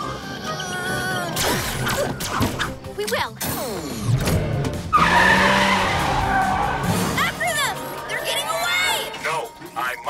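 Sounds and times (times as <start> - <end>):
music: 0.0 - 10.0
cartoon tyres screeching: 4.8 - 7.4.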